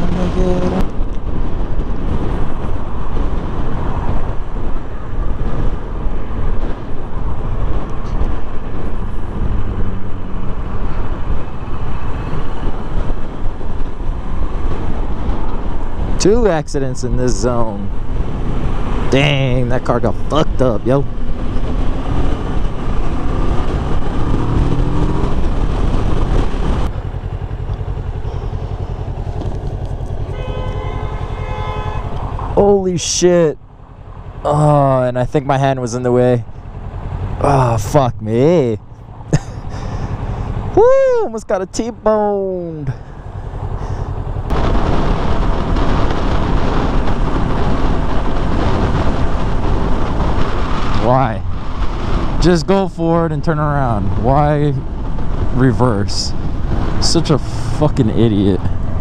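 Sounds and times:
motorcycle engine: 0:00.0 - 0:16.4, 0:17.6 - 0:59.0
wind noise: 0:00.0 - 0:33.6, 0:34.2 - 0:59.0
vehicle horn: 0:30.2 - 0:32.4.

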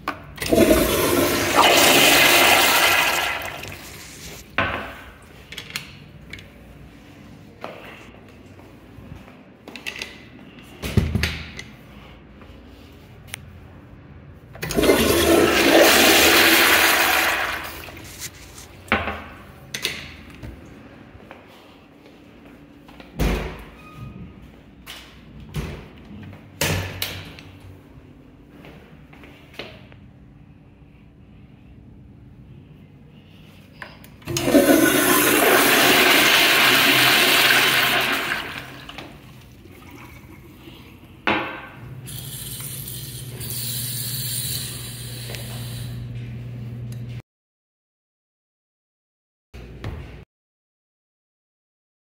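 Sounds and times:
toilet flushing: 0:00.4 - 0:04.4, 0:14.6 - 0:18.2, 0:34.2 - 0:40.8.

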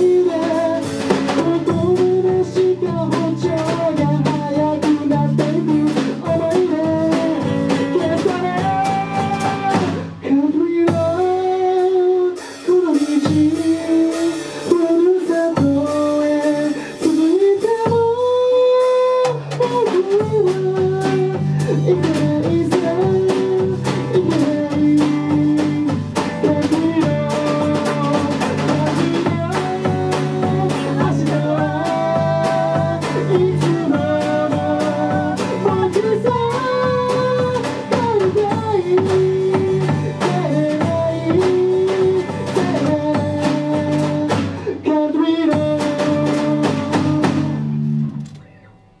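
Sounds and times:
strummed acoustic guitar: 0:00.0 - 0:18.8, 0:19.4 - 0:48.7
man singing: 0:00.0 - 0:47.8
drum kit: 0:00.0 - 0:49.0.

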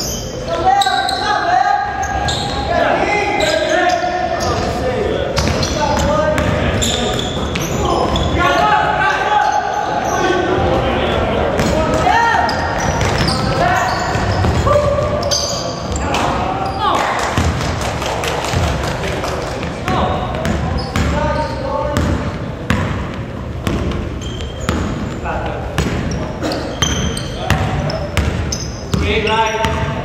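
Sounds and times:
players' voices echoing: 0:00.0 - 0:30.0.

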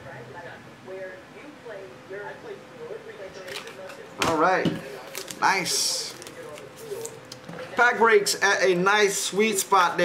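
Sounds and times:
trading card being handled: 0:04.8 - 0:07.5
crisp clicks and rustles: 0:05.0 - 0:07.5.

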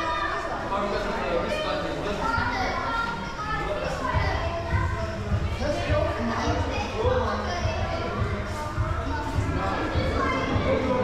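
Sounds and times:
chatter of visitors: 0:00.0 - 0:11.0
children's voices: 0:00.0 - 0:11.0.

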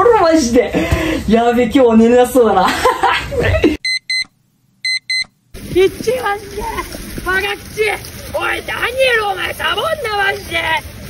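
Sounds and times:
man laughing loudly: 0:02.6 - 0:03.8.

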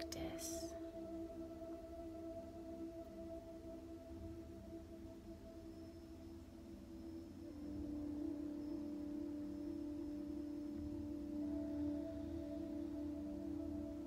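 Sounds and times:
ambient meditation music: 0:00.0 - 0:14.0.

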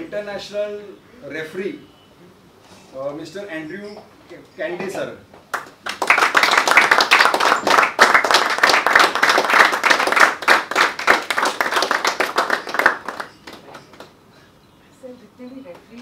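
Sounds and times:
people clapping: 0:05.4 - 0:14.2.

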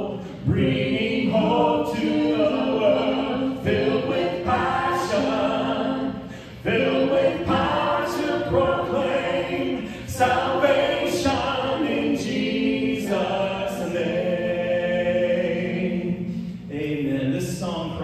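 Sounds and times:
congregation singing a hymn: 0:00.0 - 0:18.0
worship band playing: 0:00.0 - 0:18.0.

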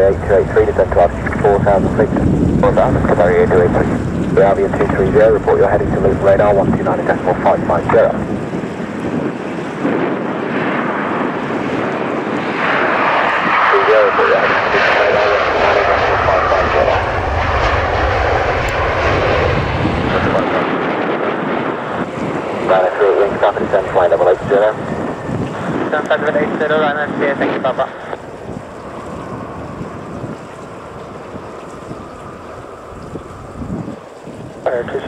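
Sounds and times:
radio voices: 0:00.0 - 0:08.2, 0:13.5 - 0:17.0, 0:22.5 - 0:24.9, 0:25.5 - 0:28.2, 0:34.6 - 0:35.0
jet engine roar: 0:00.0 - 0:35.0.

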